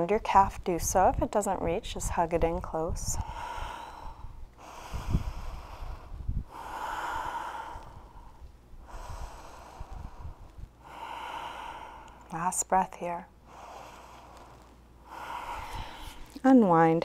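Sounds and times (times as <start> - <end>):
woman breathing slowly: 3.0 - 12.7, 13.3 - 16.4.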